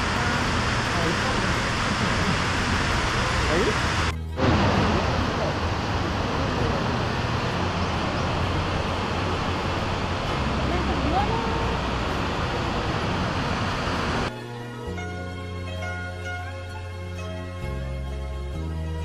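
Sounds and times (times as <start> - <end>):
waterfall roaring: 0.0 - 14.3.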